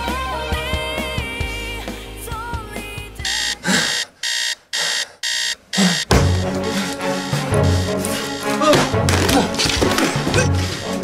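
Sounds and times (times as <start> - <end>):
music: 0.0 - 3.5, 6.1 - 11.0
phone ringing with beeps: 3.2 - 8.6.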